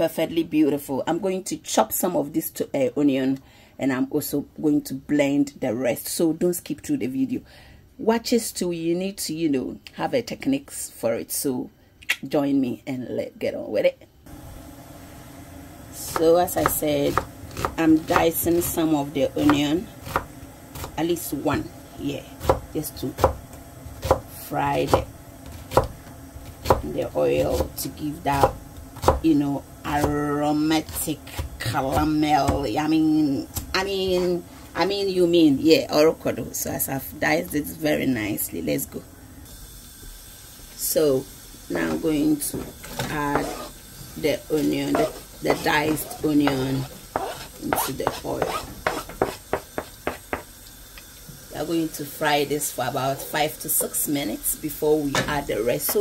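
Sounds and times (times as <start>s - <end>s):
onion frying in oil: 14.3s - 35.8s, 36.5s - 56.0s
knife chopping onion on board: 16.1s - 21.0s, 22.4s - 23.4s, 24.0s - 26.0s, 26.6s - 29.2s, 44.6s - 50.5s.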